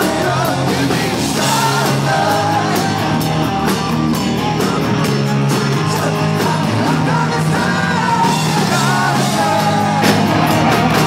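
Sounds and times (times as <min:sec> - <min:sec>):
man singing: 0:00.0 - 0:03.3, 0:04.5 - 0:10.4
bass guitar: 0:00.0 - 0:11.0
drums: 0:00.0 - 0:11.0
electric guitar: 0:00.0 - 0:11.0.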